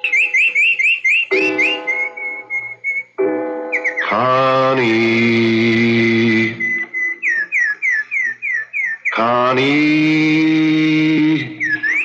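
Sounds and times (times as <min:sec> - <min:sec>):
pet bird chirping: 0:00.0 - 0:04.4, 0:06.4 - 0:10.0, 0:11.4 - 0:12.0
held chord of music: 0:01.3 - 0:06.5.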